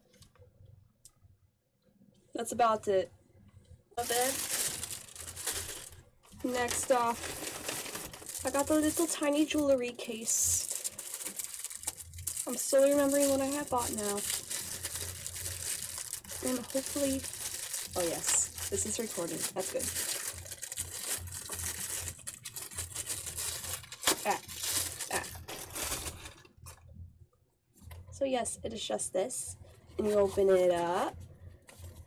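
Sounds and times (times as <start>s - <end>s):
plastic packaging crinkling: 4.0s - 26.8s.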